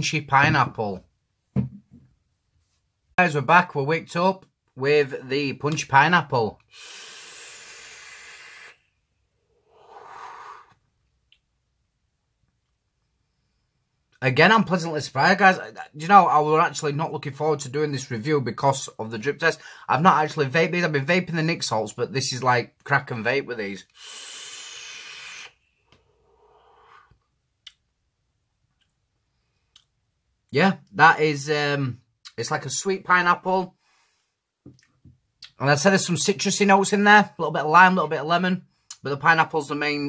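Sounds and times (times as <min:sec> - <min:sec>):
vape draw airflow hiss: 0:06.7 - 0:08.8, 0:24.0 - 0:25.6
breathy exhale: 0:06.7 - 0:10.8, 0:23.9 - 0:27.2.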